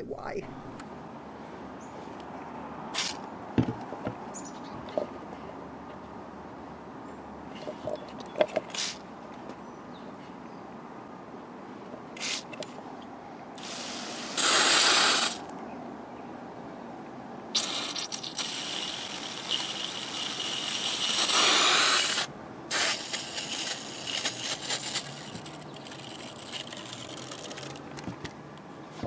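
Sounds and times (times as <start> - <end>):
water spray hissing on soil: 8.7 - 9.0, 12.2 - 12.5, 13.6 - 15.4, 17.5 - 27.8.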